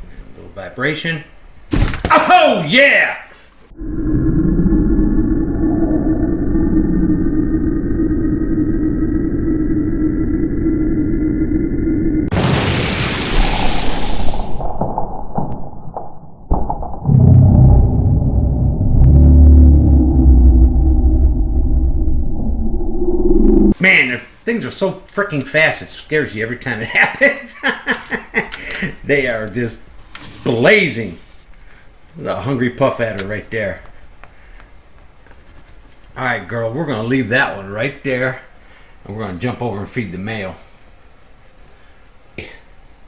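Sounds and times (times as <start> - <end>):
low drone with rising tones: 3.7 - 12.3, 16.9 - 23.8
deep rumble: 3.7 - 23.8
loud hiss: 12.3 - 14.6.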